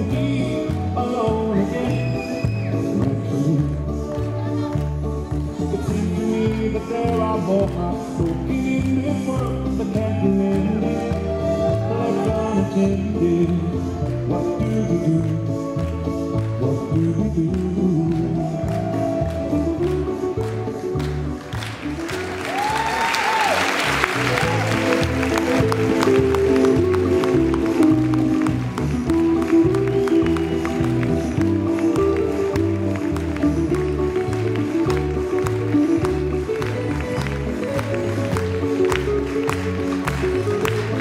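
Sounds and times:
ballroom dance music: 0:00.0 - 0:41.0
audience applause: 0:19.8 - 0:41.0.

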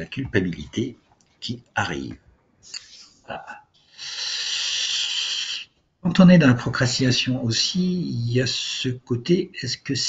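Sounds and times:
steady hiss: 0:02.6 - 0:05.7.

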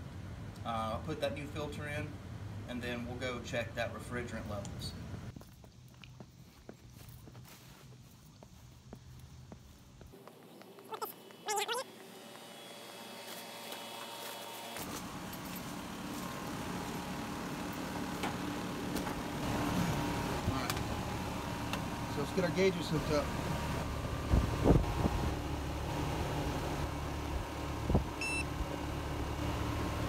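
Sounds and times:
air conditioner fan and compressor: 0:12.0 - 0:30.0.

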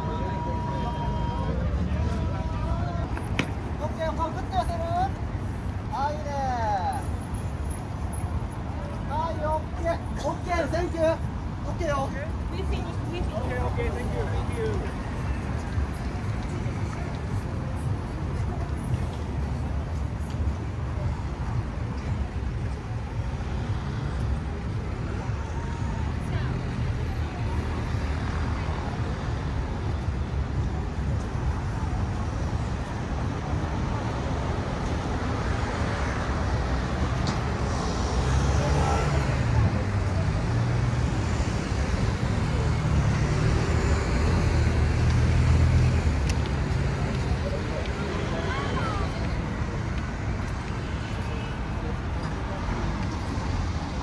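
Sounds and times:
road traffic rumble: 0:00.0 - 0:54.0
people talking: 0:46.4 - 0:50.1.

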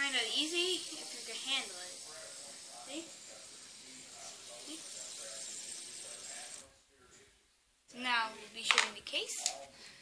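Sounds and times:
fidget spinner bearing whirring: 0:00.0 - 0:06.6.

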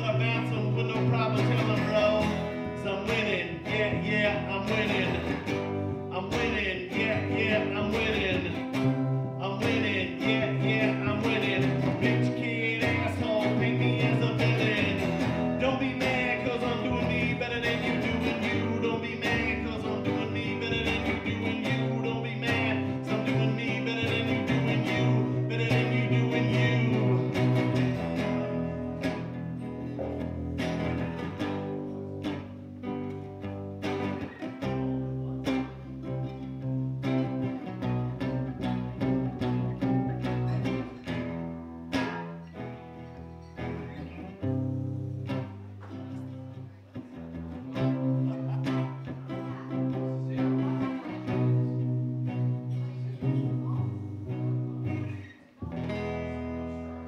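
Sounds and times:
acoustic guitar strumming: 0:00.0 - 0:57.0
double bass playing: 0:00.0 - 0:57.0.

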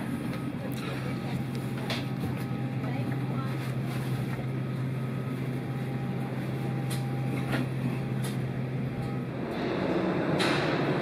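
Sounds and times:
air conditioning humming: 0:00.0 - 0:11.0.

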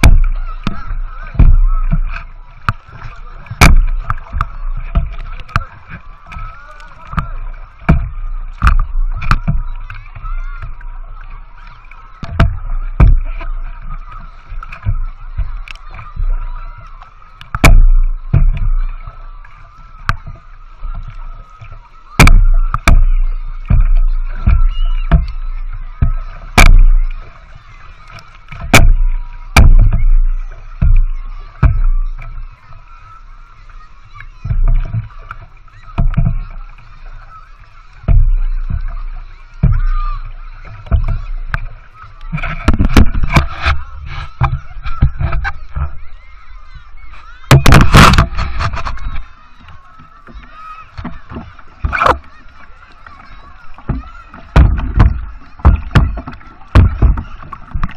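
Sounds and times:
paddle knocking against hull: 0:00.0 - 0:57.9
water slapping boat hull: 0:00.0 - 0:57.9.

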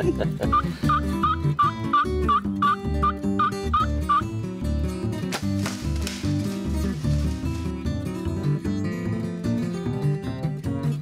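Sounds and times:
crash: 0:05.4 - 0:07.8.

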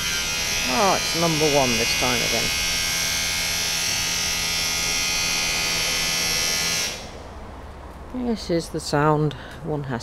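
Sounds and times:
electric power drill whining: 0:00.0 - 0:07.2.

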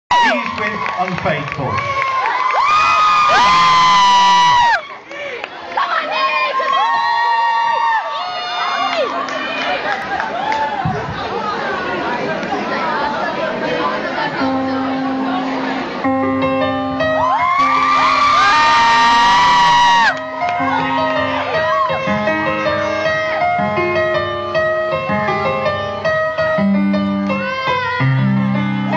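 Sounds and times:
children shouting and cheering: 0:01.9 - 0:05.1, 0:05.7 - 0:12.1, 0:17.0 - 0:23.6
live music: 0:13.9 - 0:28.9.

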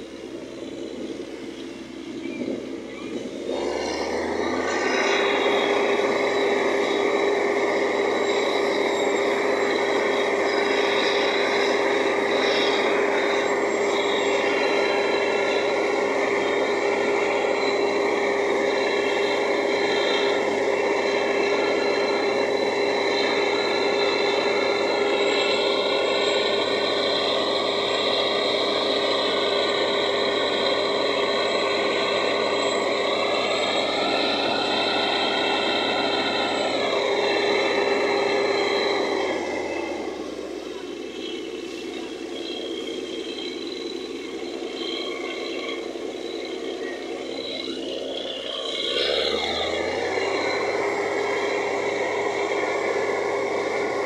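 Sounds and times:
drilling rig running: 0:00.0 - 0:54.0.

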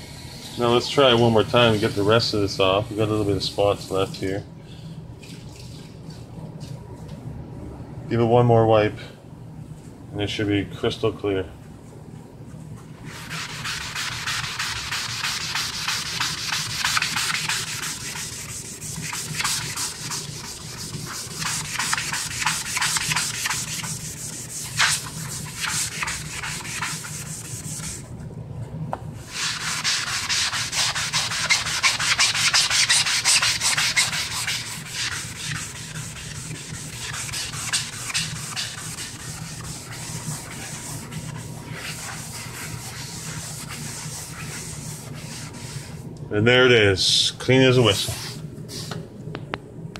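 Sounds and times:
sponge scrubbing on wood desk: 0:01.0 - 0:04.1, 0:13.1 - 0:28.0, 0:29.3 - 0:46.0, 0:48.0 - 0:48.9.

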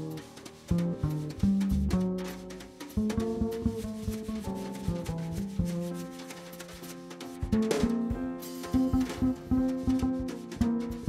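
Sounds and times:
jazz piano and bass: 0:00.0 - 0:11.0
light drum taps: 0:00.0 - 0:11.0
wire brushes on snare drum: 0:00.0 - 0:11.0.

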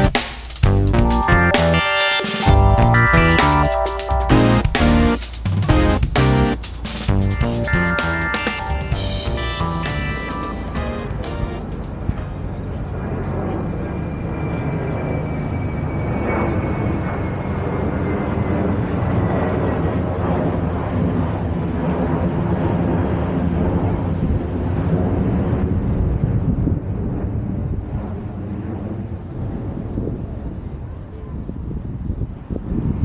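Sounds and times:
engine rumble: 0:04.3 - 0:07.6, 0:09.0 - 0:26.0.

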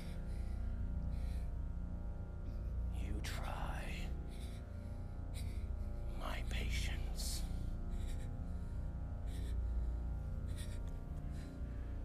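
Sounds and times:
whispered vocal sounds: 0:02.9 - 0:04.2, 0:06.1 - 0:07.8.

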